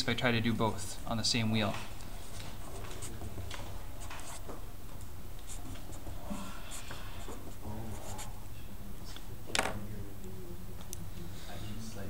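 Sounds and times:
marker scratching on paper: 4.0s - 4.5s, 5.4s - 8.4s.

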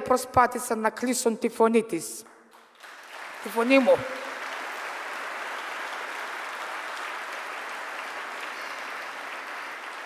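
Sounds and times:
audience applause: 2.5s - 10.0s.

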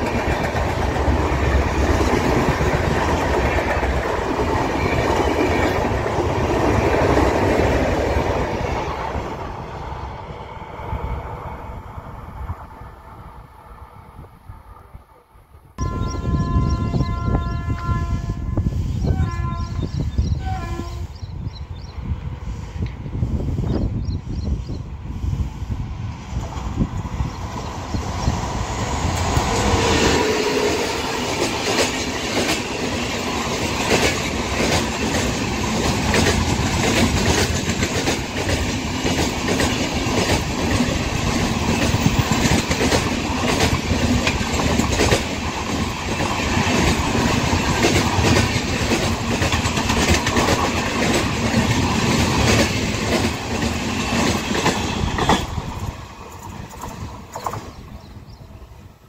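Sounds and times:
wheels clickety-clack on rail: 0.0s - 9.4s, 26.3s - 58.1s
train passing at speed: 0.0s - 59.0s.

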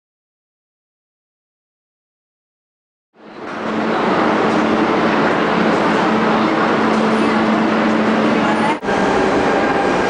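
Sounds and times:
rushing station noise: 3.2s - 10.0s.

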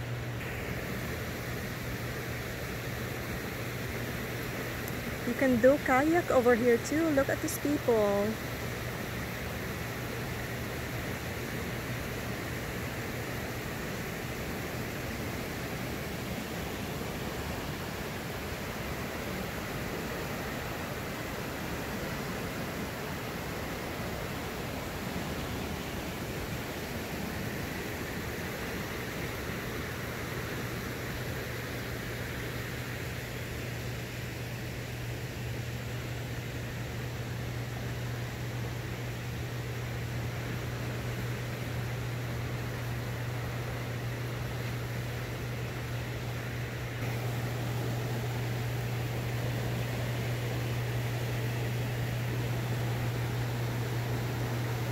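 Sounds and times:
low steady hum: 0.0s - 54.9s.

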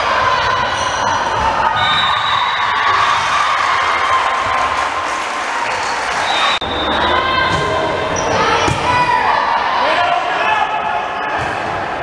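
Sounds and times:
girls shouting in gymnasium: 6.9s - 10.6s.

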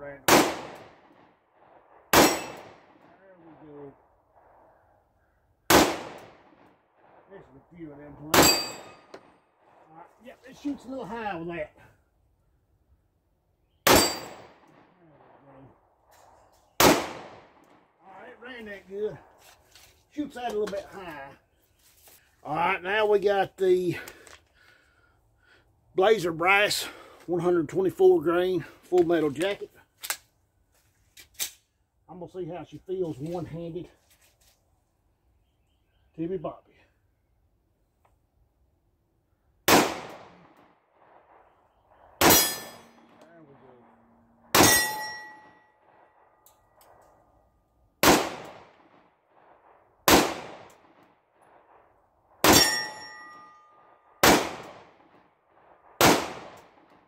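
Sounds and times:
pistol shot with echo: 0.2s - 1.3s, 2.1s - 3.0s, 5.7s - 6.7s, 13.8s - 14.9s, 16.8s - 17.6s, 39.7s - 40.6s, 41.2s - 43.2s, 43.9s - 45.5s, 48.0s - 49.0s, 50.0s - 51.0s, 52.4s - 53.1s, 54.2s - 55.0s, 56.0s - 56.9s.

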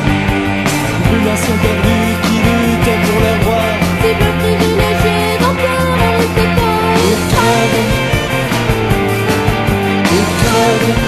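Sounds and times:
punk rock band playing: 0.0s - 11.0s
steady drum beat: 0.0s - 11.0s.

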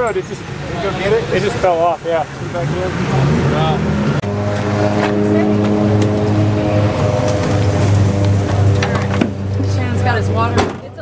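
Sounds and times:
car engine running: 1.1s - 11.0s.

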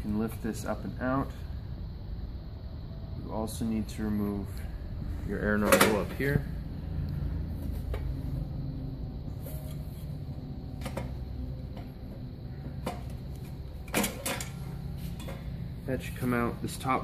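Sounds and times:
steady low hum: 0.0s - 17.0s
metal knocks and clanks: 10.7s - 14.6s.

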